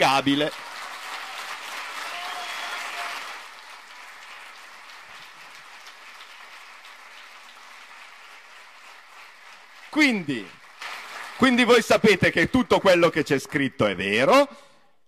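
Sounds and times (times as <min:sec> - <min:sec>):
audience applause: 0:00.0 - 0:12.4.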